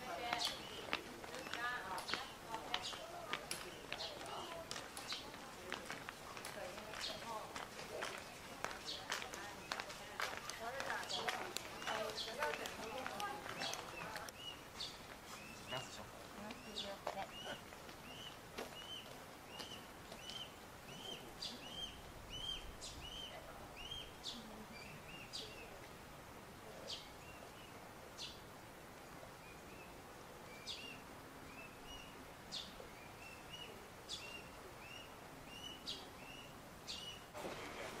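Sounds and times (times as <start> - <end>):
outdoor hush: 0.0 - 38.0.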